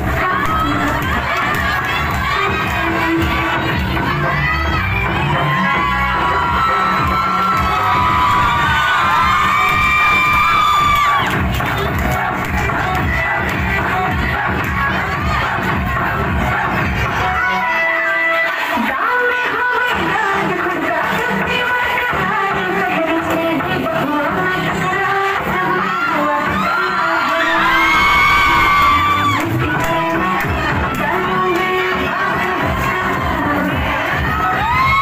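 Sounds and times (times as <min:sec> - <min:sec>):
crowd of women shouting and cheering: 0:00.0 - 0:35.0
dance music: 0:00.0 - 0:35.0.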